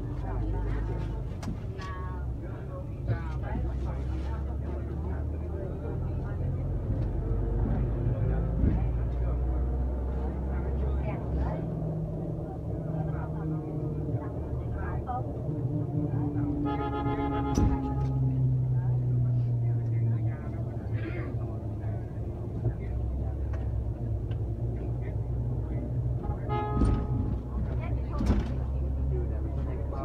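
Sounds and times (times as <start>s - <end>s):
bus engine and road rumble: 0.0s - 30.0s
faint voices: 0.0s - 30.0s.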